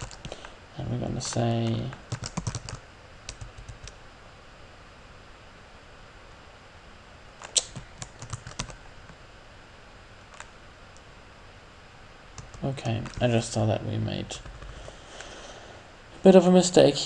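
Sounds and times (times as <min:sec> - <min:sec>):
keyboard typing: 0:00.0 - 0:00.4, 0:01.2 - 0:04.0, 0:07.4 - 0:08.8, 0:12.4 - 0:13.4, 0:14.4 - 0:14.9.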